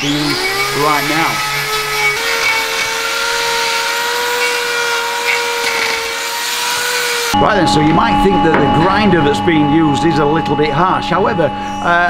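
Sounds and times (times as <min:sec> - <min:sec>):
electric grinder whining: 0:00.0 - 0:07.4.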